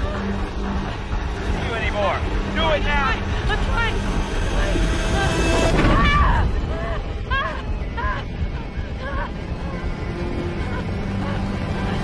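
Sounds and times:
deep low rumble: 2.2s - 12.0s.

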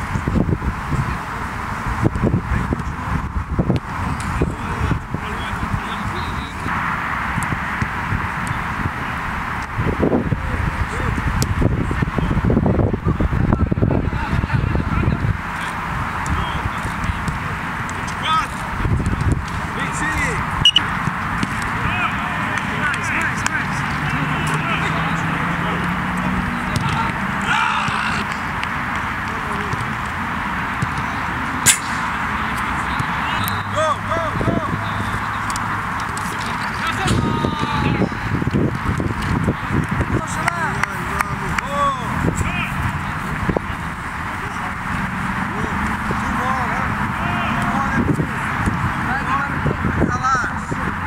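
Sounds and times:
distant shouting voices: 10.4s - 38.5s, 39.1s - 51.0s
footballs being kicked: 26.6s - 31.8s.

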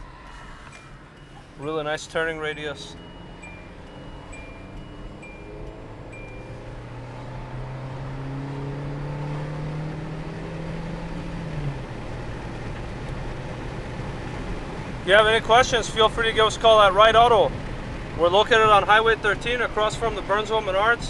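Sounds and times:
car engine accelerating: 0.0s - 21.0s
short chime beeps: 0.8s - 6.7s.

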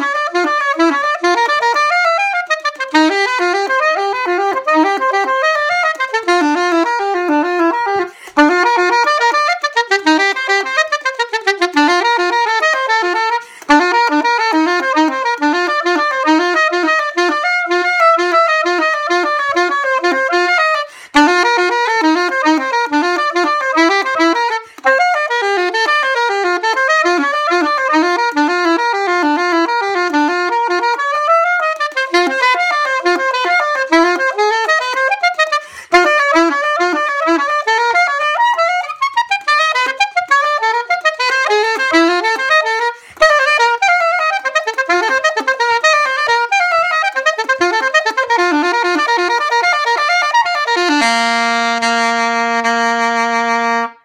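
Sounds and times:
soprano saxophone fast runs: 0.0s - 54.0s.

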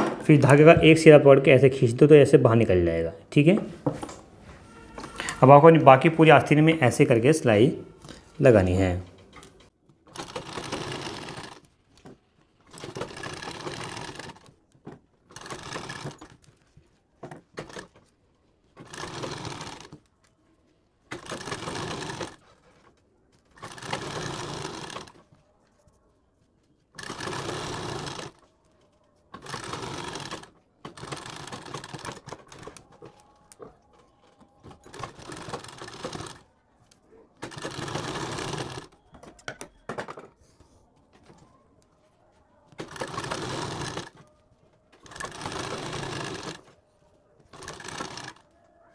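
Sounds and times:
sewing machine sewing: 8.0s - 25.9s, 26.7s - 40.1s, 42.7s - 46.8s, 47.4s - 48.5s.

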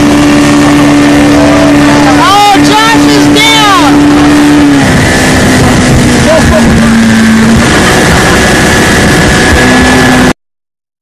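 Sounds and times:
wind noise: 0.0s - 10.3s
motorboat engine running: 0.0s - 10.4s
water noise: 0.0s - 10.4s.

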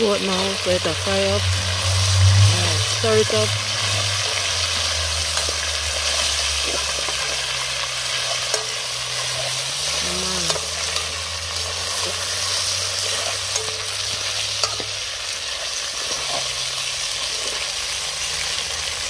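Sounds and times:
meat sizzling in hot oil: 0.0s - 19.0s.

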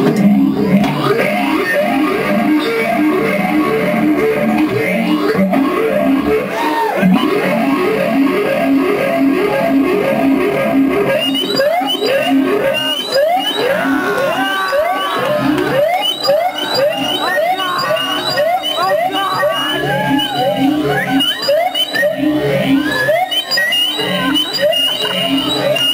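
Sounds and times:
distorted electric guitar: 0.0s - 25.9s.

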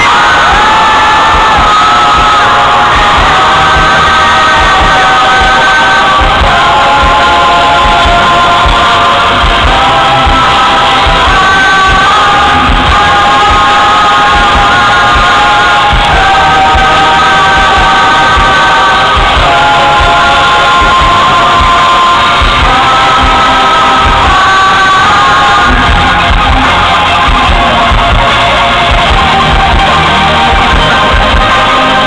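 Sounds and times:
live band over loud pa: 0.0s - 32.0s
steady drum beat: 0.0s - 32.0s.

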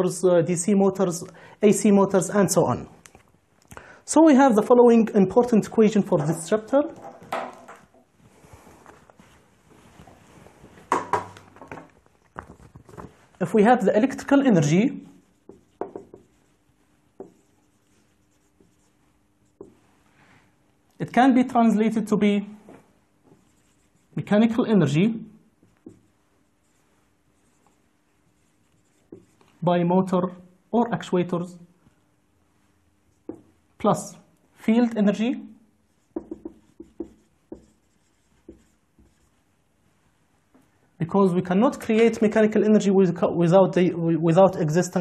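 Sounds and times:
marker pen writing on whiteboard: 4.3s - 8.1s, 10.9s - 19.9s, 23.2s - 24.4s, 25.6s - 29.6s, 33.0s - 33.7s, 35.8s - 39.5s
marker tip tapping on board: 15.5s - 16.2s, 36.1s - 37.8s.

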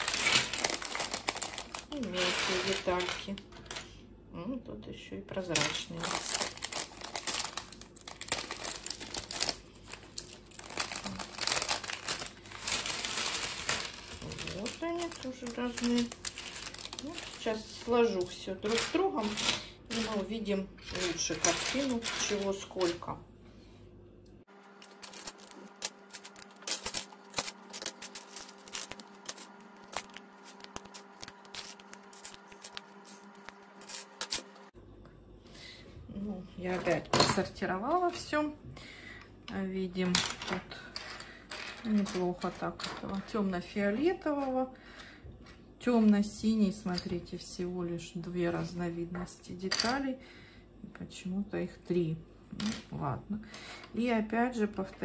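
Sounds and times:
plastic bag crinkling: 0.0s - 3.8s, 5.5s - 23.1s, 24.7s - 34.7s
faint steady hum: 0.0s - 55.0s
plastic bricks clicking and clattering: 18.7s - 23.0s.

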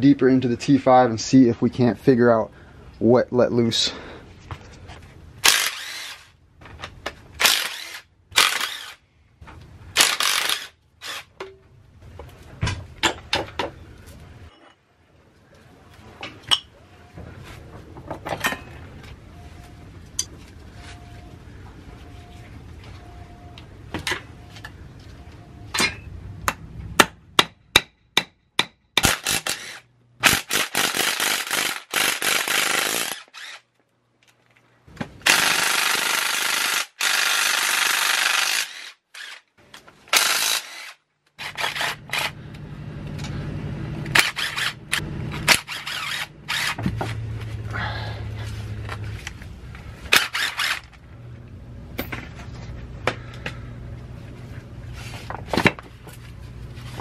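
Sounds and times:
impact driver hammering: 25.8s - 33.3s.

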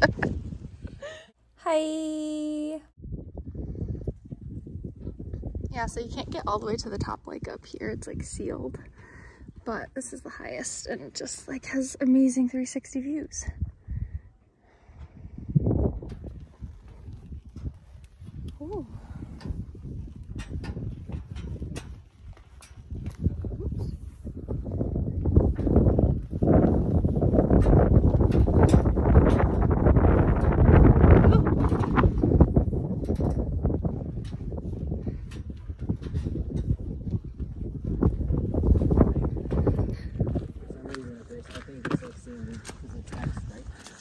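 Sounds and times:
wind rumble on microphone: 0.0s - 1.3s, 2.0s - 12.4s, 13.1s - 44.0s.

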